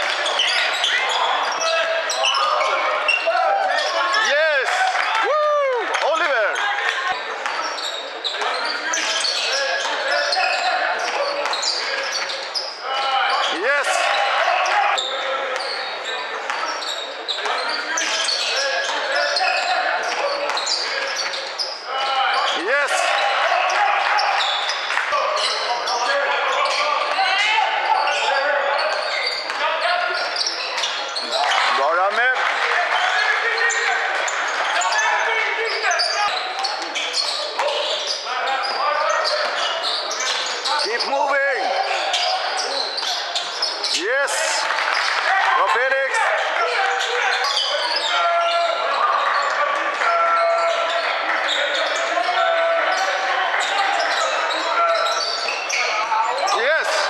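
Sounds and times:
sneakers squeaking: 0.0 - 5.2, 5.8 - 45.4, 46.2 - 57.0
players calling out: 0.0 - 57.0.

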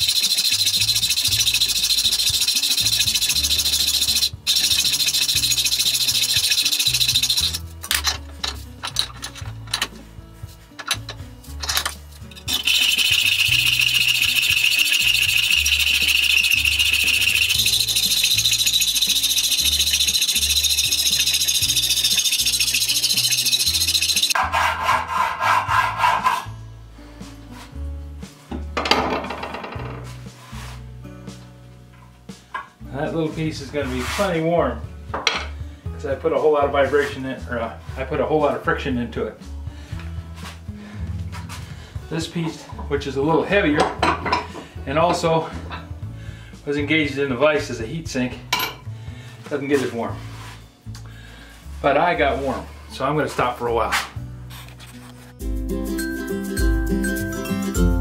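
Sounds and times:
hacksaw cutting metal: 0.0 - 9.4, 10.9 - 26.5.

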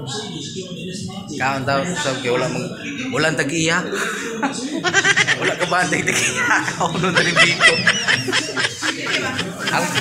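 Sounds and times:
person laughing: 4.9 - 10.0.

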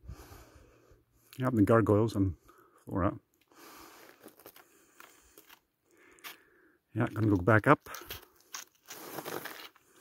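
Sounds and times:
footsteps on crusty snow: 7.9 - 10.0.

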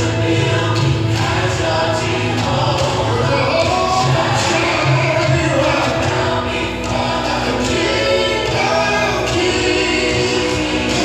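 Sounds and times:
bass line: 0.0 - 11.0
choir singing gospel: 0.0 - 11.0.

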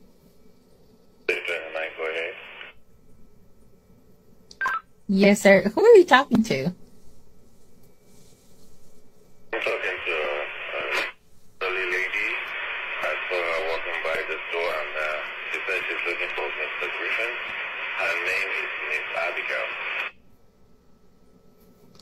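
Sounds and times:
speech over two-way radio: 1.3 - 2.7, 9.6 - 20.1.

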